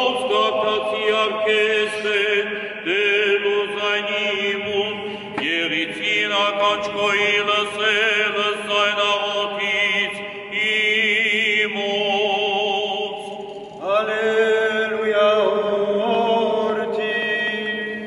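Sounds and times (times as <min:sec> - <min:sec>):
man chanting: 0:00.0 - 0:18.0.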